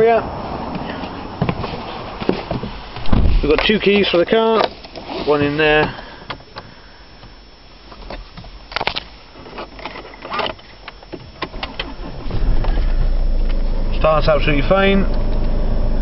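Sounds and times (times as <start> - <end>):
car engine starting and idling: 11.3 - 16.0.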